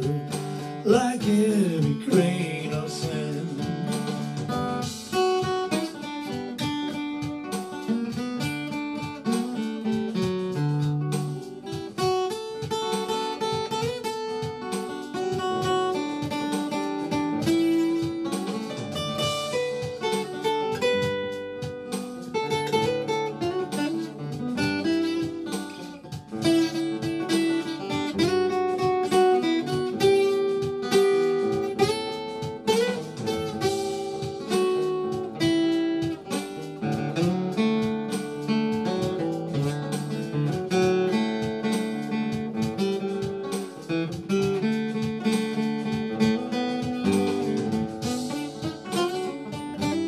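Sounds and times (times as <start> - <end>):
acoustic guitar playing: 0.0 - 50.0.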